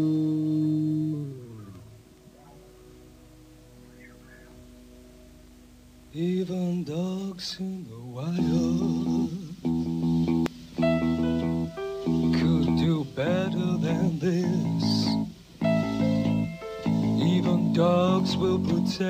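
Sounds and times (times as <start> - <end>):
man singing with vibrato: 0.0 - 2.0, 6.1 - 10.4, 12.0 - 19.0.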